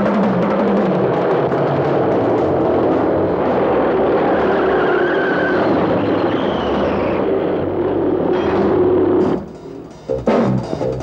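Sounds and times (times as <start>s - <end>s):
background music: 8.3s - 11.0s.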